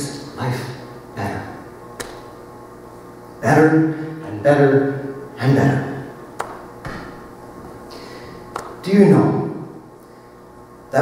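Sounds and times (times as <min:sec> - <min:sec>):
sharp click: 0:02.0 - 0:02.3, 0:06.4 - 0:07.1, 0:08.5 - 0:08.8.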